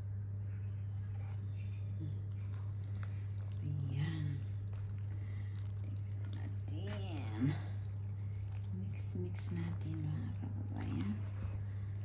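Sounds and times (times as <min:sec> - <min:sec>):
steady low hum: 0:00.0 - 0:12.0
spatula stirring in plastic bowl: 0:02.4 - 0:12.0.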